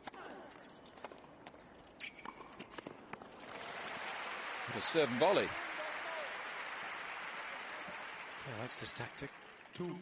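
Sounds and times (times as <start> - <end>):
shoe squeak: 1.9 - 2.8.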